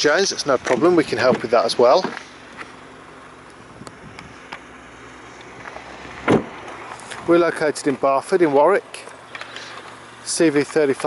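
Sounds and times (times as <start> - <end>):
car door shutting thud: 6.2 - 6.7.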